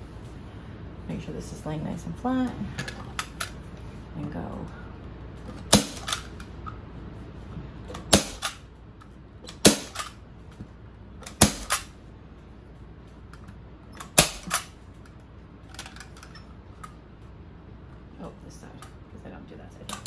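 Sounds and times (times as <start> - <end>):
staple gun snapping: 9.5 - 10.1, 11.2 - 11.9.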